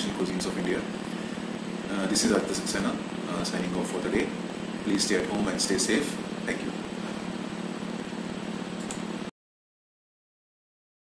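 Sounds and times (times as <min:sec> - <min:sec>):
low hum with hiss: 0:00.0 - 0:09.3.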